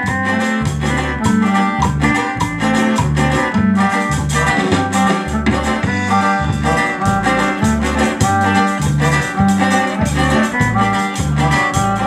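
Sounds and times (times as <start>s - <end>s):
bass line: 0.0s - 12.0s
live band dance music: 0.0s - 12.0s.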